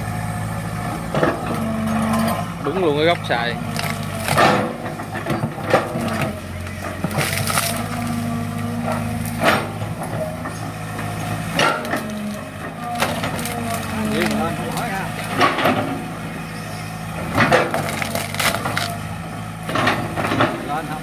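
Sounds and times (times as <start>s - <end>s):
excavator diesel engine running: 0.0s - 21.0s
wood snapping: 3.6s - 8.2s, 11.5s - 15.9s, 17.3s - 19.0s
bucket tearing out shrubs: 11.7s - 15.8s, 17.4s - 19.0s.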